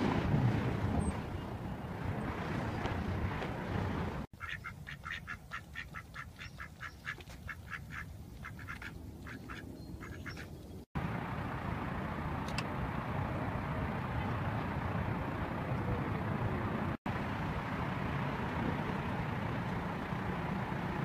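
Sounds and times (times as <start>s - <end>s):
ducks quacking: 4.4s - 10.5s.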